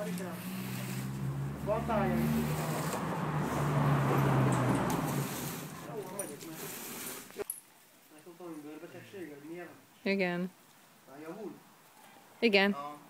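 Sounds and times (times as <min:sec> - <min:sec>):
car engine hum: 0:00.0 - 0:06.4.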